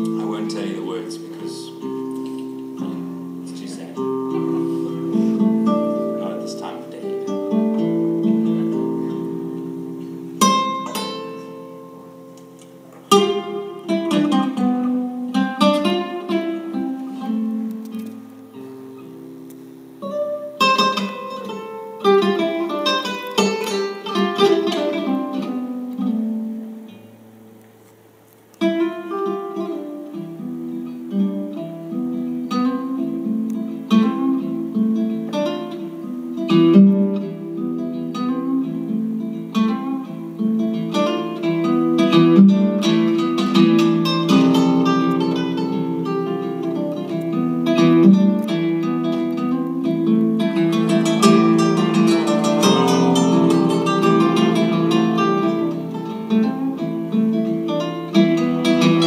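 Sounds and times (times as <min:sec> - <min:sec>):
classical guitar fingerpicking: 0:00.0 - 0:59.0.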